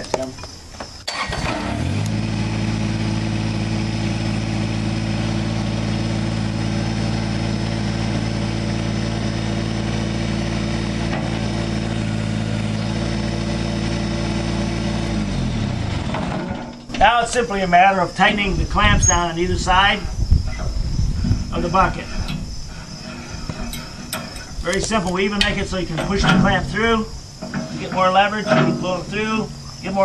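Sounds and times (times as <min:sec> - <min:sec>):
tractor diesel engine running: 0:01.1 - 0:30.0.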